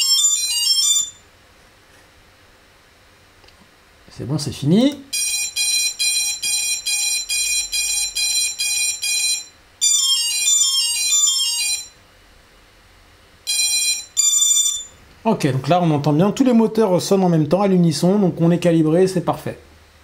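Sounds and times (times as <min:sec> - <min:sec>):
motor calibration beeps: 0:05.2 - 0:11.4, 0:13.5 - 0:15.0.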